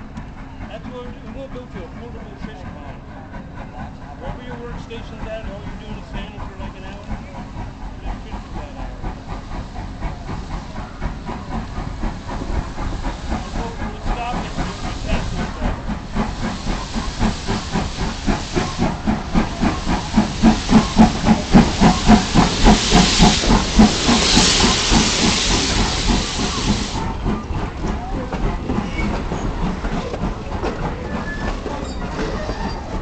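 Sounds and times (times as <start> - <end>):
steam locomotive clattering past: 0.0 - 33.0
steam hissing bursts: 8.1 - 27.4.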